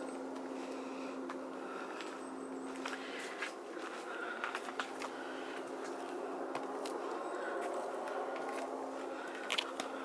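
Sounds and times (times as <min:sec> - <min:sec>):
steady low hum: 0:00.0 - 0:10.0
footsteps on stone steps: 0:01.3 - 0:10.0.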